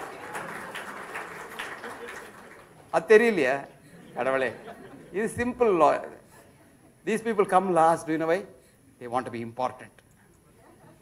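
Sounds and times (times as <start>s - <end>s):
audience murmuring: 0.0s - 2.9s.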